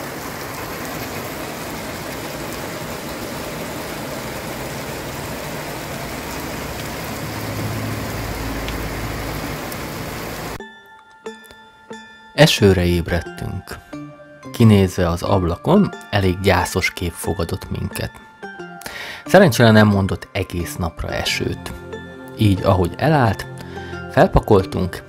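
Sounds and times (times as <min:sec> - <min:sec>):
heavy rain on pavement: 0:00.0 - 0:10.6.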